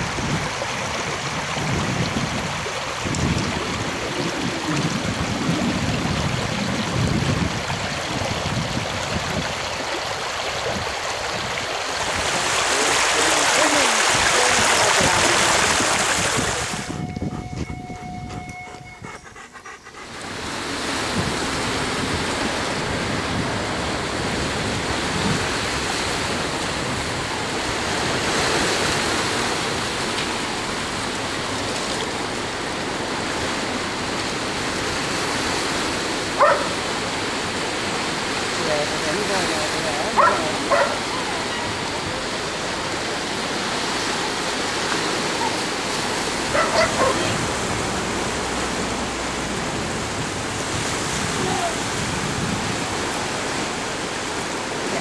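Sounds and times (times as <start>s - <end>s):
stream running over stones: 0.0s - 17.0s, 20.0s - 55.0s
dog barking: 36.4s - 36.8s, 40.1s - 41.6s, 46.5s - 47.4s.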